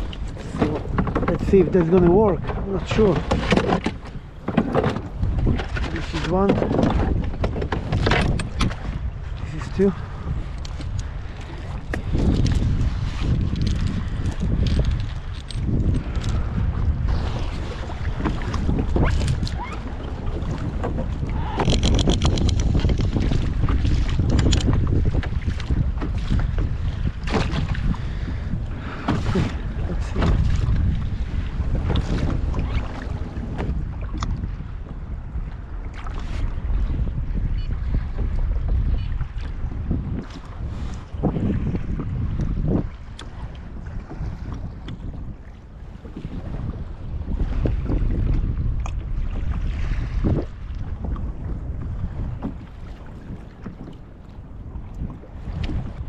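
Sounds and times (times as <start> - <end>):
knocks and clatter from boat: 0.0 - 56.0
wind buffeting microphone: 0.0 - 56.0
anchor chain rattling: 12.2 - 16.6, 21.6 - 23.2, 24.2 - 25.0.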